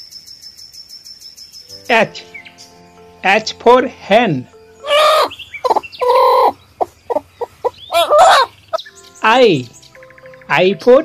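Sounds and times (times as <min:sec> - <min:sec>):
hen clucking: 0:04.7 - 0:08.9.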